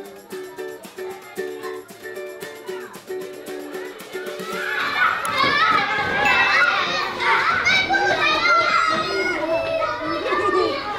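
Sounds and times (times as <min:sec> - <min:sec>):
children shouting excitedly: 0:03.6 - 0:10.9.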